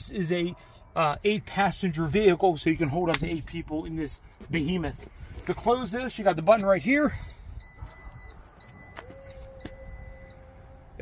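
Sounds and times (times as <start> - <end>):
high warning beeps: 6.3 - 10.4.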